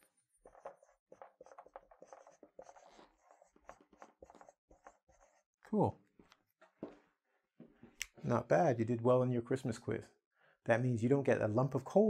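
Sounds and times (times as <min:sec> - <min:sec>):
marker writing on whiteboard: 0:00.0 - 0:05.8.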